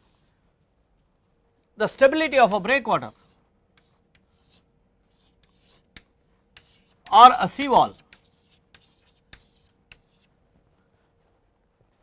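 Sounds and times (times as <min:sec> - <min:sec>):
chalk scratching on chalkboard: 0:00.0 - 0:00.4, 0:02.3 - 0:10.4.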